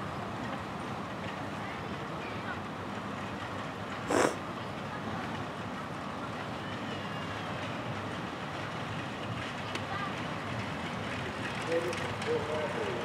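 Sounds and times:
outdoor rumble and hiss: 0.0 - 13.0.

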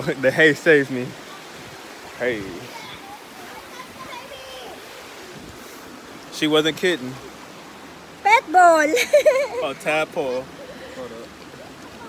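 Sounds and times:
river water flowing: 0.0 - 12.0.

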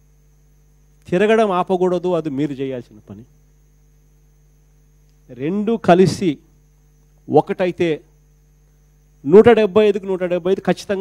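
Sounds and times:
faint electrical hum: 0.0 - 11.0
man speaking into a microphone: 1.1 - 3.3, 5.3 - 6.5, 7.3 - 8.1, 9.2 - 11.0.

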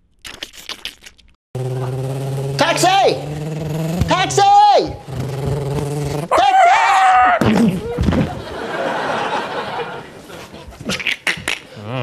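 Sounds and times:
mouth clicks: 0.2 - 1.4, 10.8 - 12.0
wobbling voiced hum: 1.6 - 8.5.

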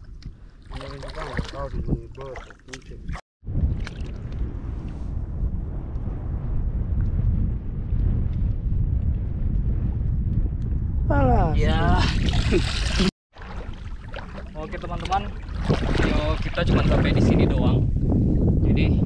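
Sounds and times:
shallow water: 0.0 - 5.0, 11.9 - 18.4
wind rumble on microphone: 0.0 - 19.0.

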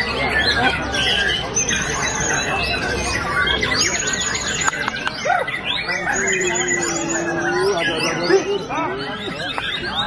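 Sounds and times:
caged birds singing: 0.0 - 10.0
sharp clicking bird notes: 4.2 - 5.3.

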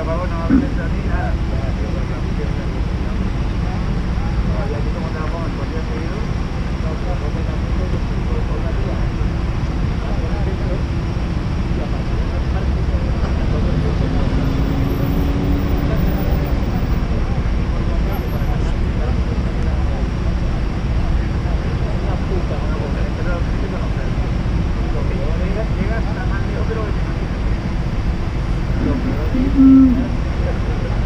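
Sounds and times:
indistinct voices: 0.0 - 31.0
traffic rumble: 0.0 - 31.0.

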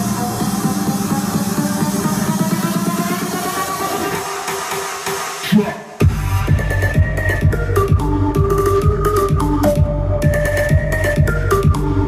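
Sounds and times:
electronic dance music through speaker: 0.0 - 12.0.

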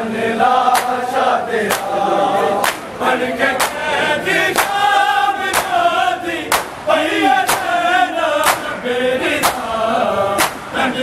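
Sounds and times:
men chanting in chorus: 0.0 - 11.0
crowd chest-beating slaps: 0.7 - 2.0, 2.6 - 2.9, 3.5 - 8.8, 9.4 - 9.8, 10.4 - 10.9.

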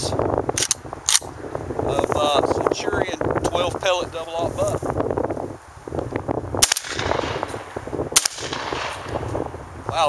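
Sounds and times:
shotgun blasts: 6.6 - 9.2.

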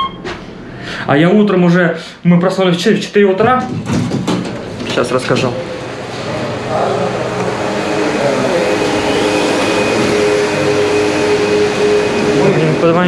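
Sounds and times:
elevator whirring hum: 0.0 - 1.0, 3.4 - 13.0.

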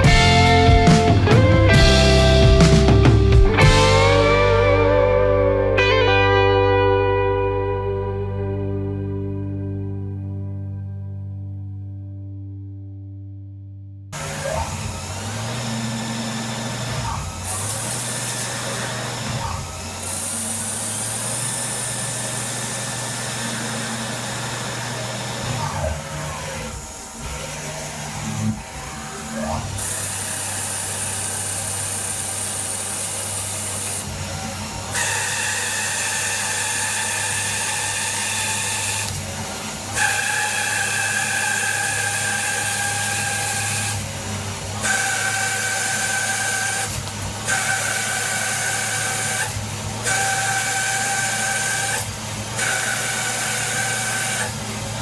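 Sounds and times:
cutting tool whining: 14.2 - 55.0
lathe spindle hum: 14.2 - 55.0.

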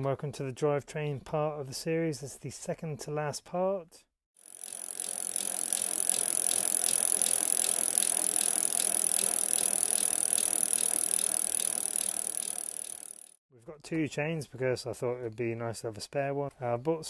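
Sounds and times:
bicycle wheel spinning and ticking: 4.4 - 13.4.

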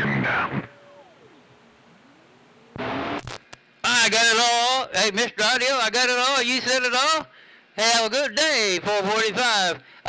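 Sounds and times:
voice over radio: 0.0 - 1.5
radio transmission burst: 0.0 - 3.5
radio hiss: 0.0 - 4.7.

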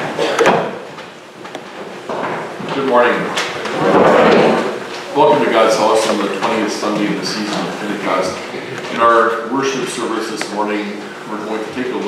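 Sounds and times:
man speaking: 2.7 - 3.4, 5.1 - 12.0.

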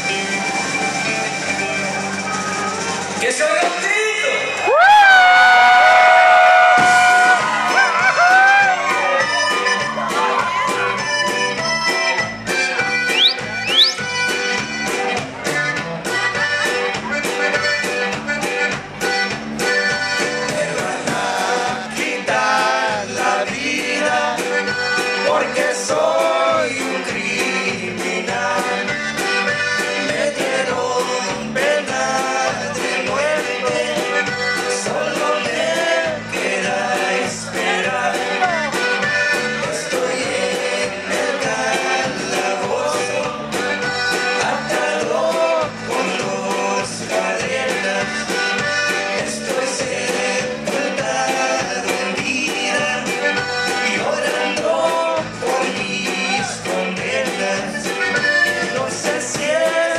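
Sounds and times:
accordion melody: 0.0 - 3.2, 7.2 - 59.9
band playing: 0.0 - 59.9.

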